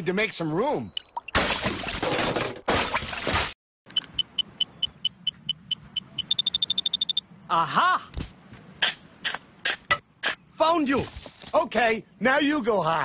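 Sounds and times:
cartoon crashing and shattering: 1.3s - 3.6s
short high-pitched beeps: 3.9s - 7.3s.

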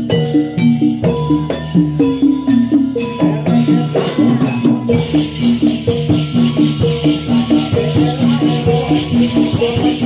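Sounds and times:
jingling rattle: 0.0s - 10.0s
metallophone notes: 0.0s - 10.0s.

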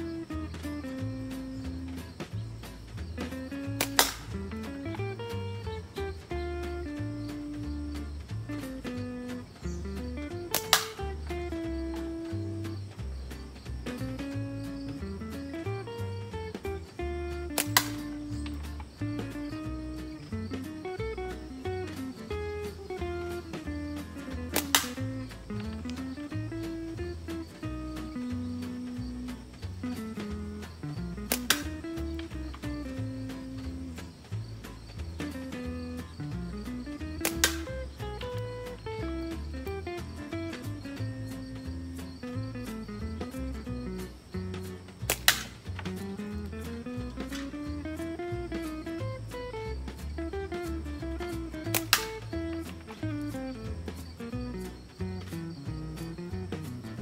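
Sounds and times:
plucked guitar music with bass: 0.0s - 57.0s
slingshot shot crack: 3.2s - 4.4s, 10.5s - 11.1s, 17.5s - 18.6s, 24.5s - 25.2s, 31.2s - 31.8s, 37.1s - 38.4s, 45.0s - 46.0s, 51.6s - 52.8s
slingshot band snapping: 3.2s - 4.6s, 10.3s - 11.3s, 17.4s - 19.0s, 23.5s - 26.2s, 30.0s - 33.0s, 36.7s - 39.4s, 44.6s - 47.6s, 51.4s - 53.3s
shot striking tin can: 3.8s - 4.4s, 10.5s - 11.0s, 17.6s - 18.1s, 24.5s - 25.1s, 31.3s - 31.7s, 37.2s - 37.7s, 45.1s - 45.7s.

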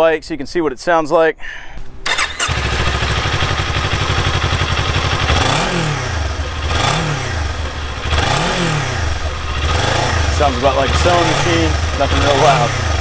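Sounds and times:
motorcycle engine idling and revving: 2.1s - 13.0s.

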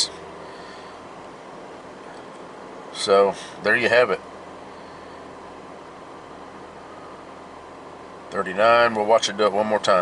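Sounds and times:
car idling with air conditioning: 0.0s - 10.0s.

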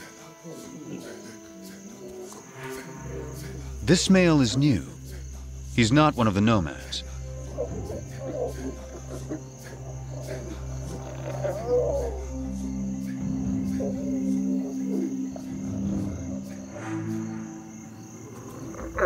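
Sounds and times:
crickets hissing: 0.0s - 19.0s
low music drone: 0.0s - 19.0s
lioness growling: 7.4s - 19.0s.

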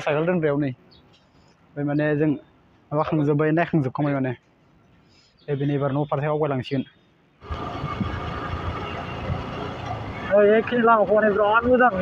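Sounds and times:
motorcycle engine and wind rumble: 7.4s - 12.0s.

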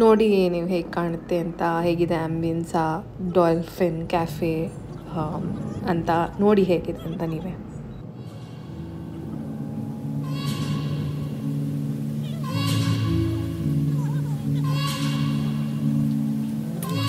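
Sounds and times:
sustained low chords: 8.6s - 14.7s.

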